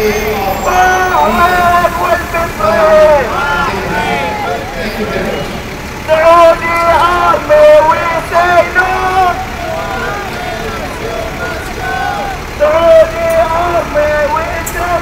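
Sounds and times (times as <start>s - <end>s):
man shouting through megaphone: 0.0s - 15.0s
road traffic: 0.0s - 15.0s.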